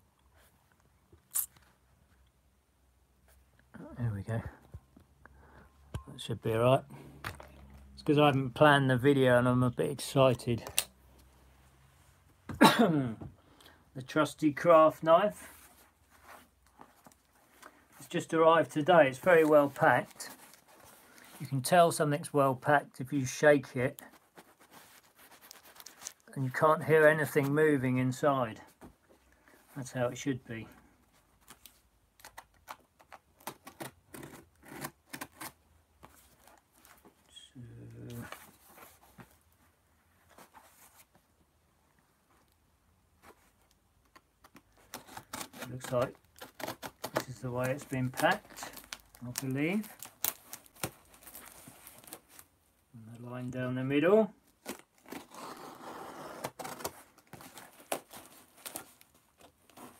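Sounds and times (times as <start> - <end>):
knife cutting packing tape: 44.9 - 47.3.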